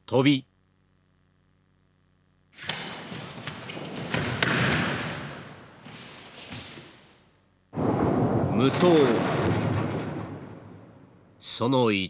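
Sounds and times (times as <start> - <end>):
man speaking: 0.0 - 0.5, 8.5 - 9.4, 11.4 - 12.0
loud boom: 7.8 - 11.4.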